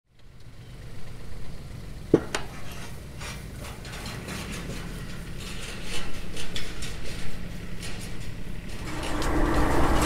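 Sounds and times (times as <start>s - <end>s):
tractor diesel engine running: 0.1s - 10.0s.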